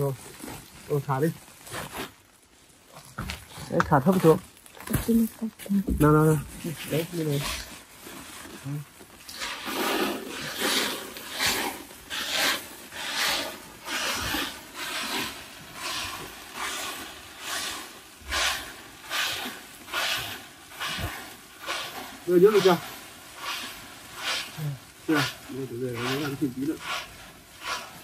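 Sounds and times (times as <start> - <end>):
rice pouring into sack: 0.0 - 2.4, 3.6 - 28.0
plastic sacks rustling: 0.0 - 28.0.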